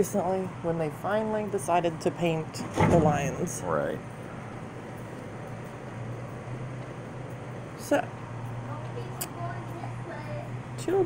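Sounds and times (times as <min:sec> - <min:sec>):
low mechanical hum: 0:00.0 - 0:11.0
outdoor background noise: 0:00.0 - 0:11.0.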